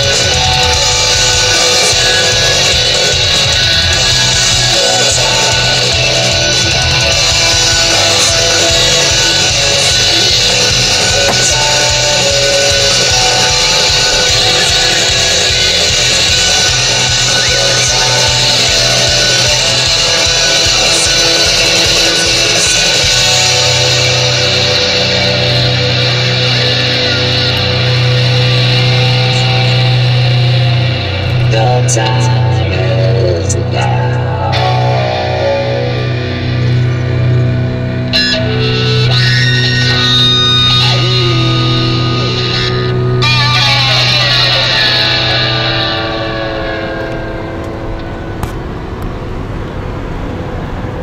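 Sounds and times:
car road noise: 0:00.0 - 0:51.0
rock music with distorted guitars: 0:00.0 - 0:51.0.

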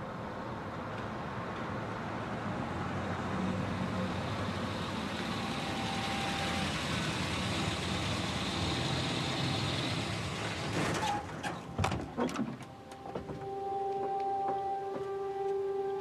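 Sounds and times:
car engine and tyres: 0:00.0 - 0:16.0.

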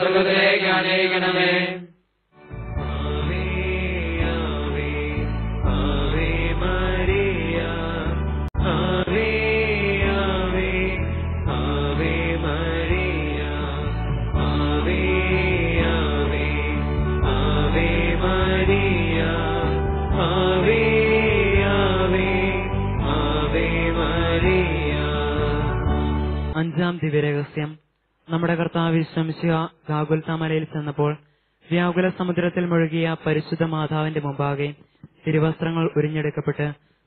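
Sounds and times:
sustained instrumental accompaniment: 0:02.4 - 0:26.6
person chanting a prayer: 0:02.9 - 0:25.8.

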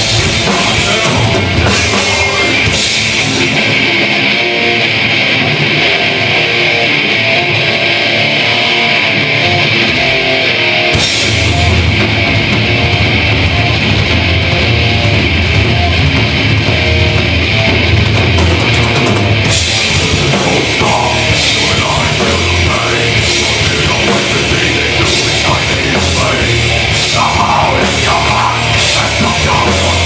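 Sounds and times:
heavy metal band playing live: 0:00.0 - 0:30.0.

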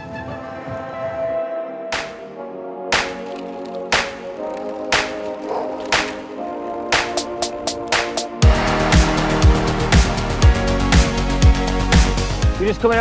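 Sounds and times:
background music with sharp hits: 0:01.9 - 0:12.6.

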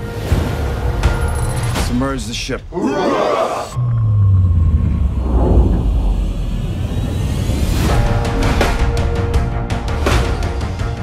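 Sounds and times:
rising whoosh: 0:03.8 - 0:08.3
deep cinematic rumble: 0:03.8 - 0:09.2.

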